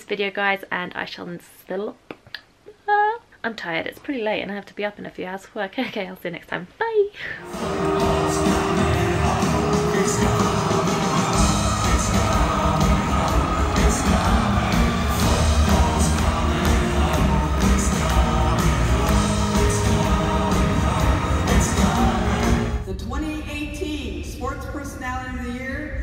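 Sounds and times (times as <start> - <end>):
audience yelling and whooping: 7.4 - 22.7
live band with singing: 7.4 - 22.8.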